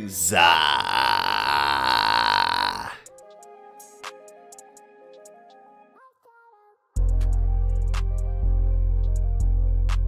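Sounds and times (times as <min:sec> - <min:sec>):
man burping: 0:00.2 - 0:03.0.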